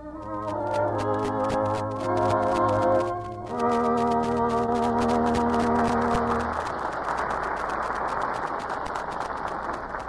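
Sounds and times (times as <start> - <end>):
held music chord: 0.0 - 6.6
studio audience applause: 1.0 - 10.0.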